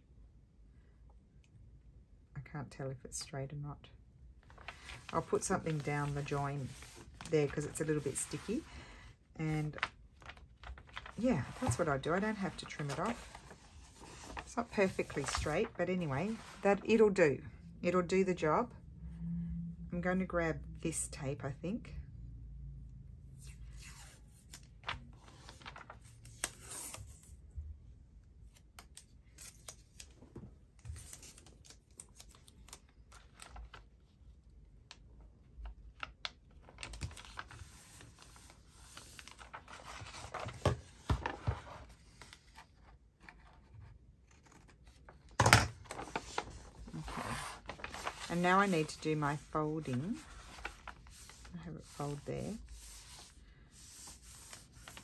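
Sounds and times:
paper crackle: 4.5s - 8.9s, 9.6s - 16.8s, 23.4s - 27.3s, 30.8s - 34.1s, 35.6s - 43.4s, 44.2s - 55.0s
paper rustling: 4.5s - 8.9s, 9.6s - 17.0s, 23.6s - 27.3s, 36.2s - 55.0s.

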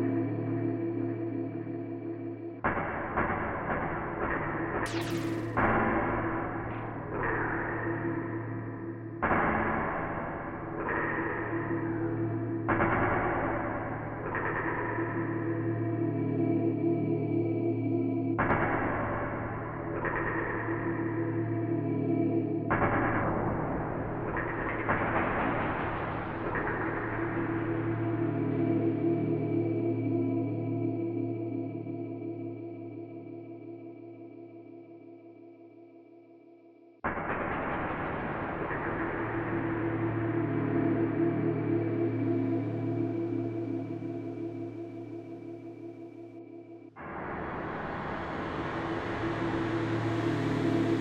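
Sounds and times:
dense bright synth layer: 4.9s - 5.9s
sustained electronic chord with reverb: 4.9s - 7.0s, 46.7s - 51.0s.

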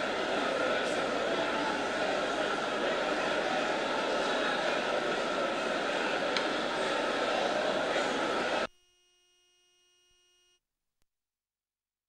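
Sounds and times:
congregation voices: 0.0s - 8.7s
faint electronic tone: 8.7s - 10.6s.

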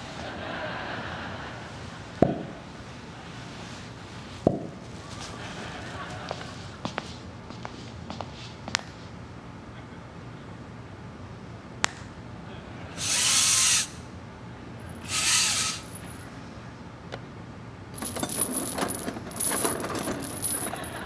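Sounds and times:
short rasping bursts: 15.0s - 16.0s
rattling zip: 18.0s - 21.0s.

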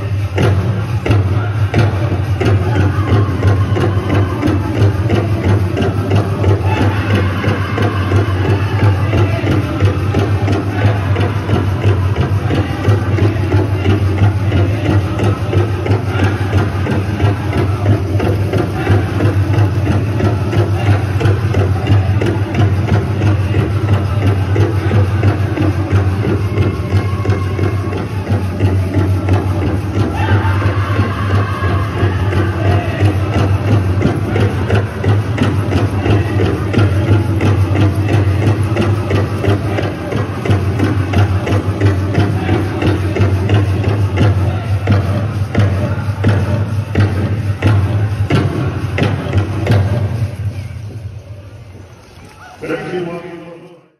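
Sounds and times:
fast big drum beat: 0.0s - 51.1s
drum group singing: 0.0s - 52.0s.

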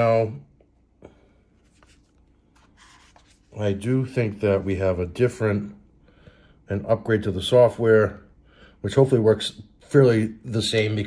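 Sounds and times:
soft rubbing of handling: 1.3s - 4.8s.

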